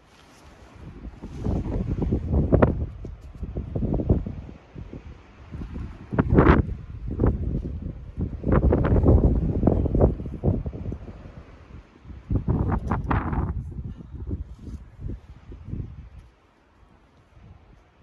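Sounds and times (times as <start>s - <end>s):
wind gusting across microphone: 0.0s - 18.0s.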